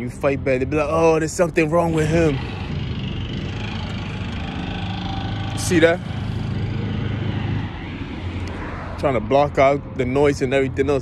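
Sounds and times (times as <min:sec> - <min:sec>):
vehicle engine running: 0:00.0 - 0:09.6.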